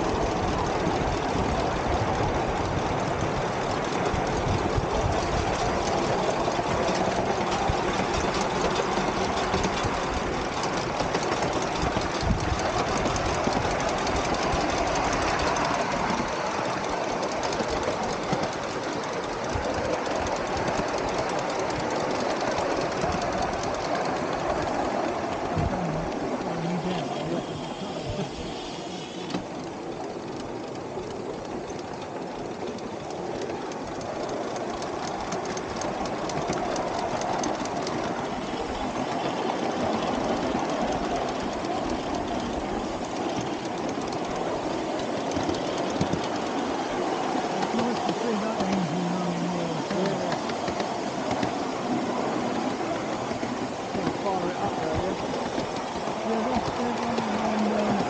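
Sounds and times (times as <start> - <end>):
steam locomotive exhaust beat: 0.0 - 58.0
wheels rattling on rails: 0.0 - 58.0.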